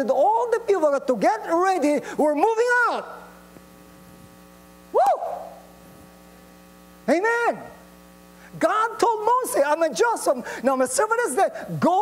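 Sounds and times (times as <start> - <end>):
person speaking: 0.0 - 3.3, 7.0 - 7.8, 8.5 - 12.0
electrical mains hum: 0.0 - 12.0.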